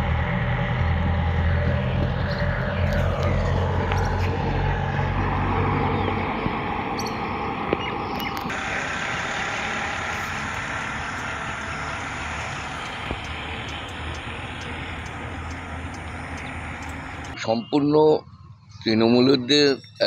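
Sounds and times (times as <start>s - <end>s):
vehicle engine hum: 0.0s - 20.0s
road hiss: 8.4s - 17.4s.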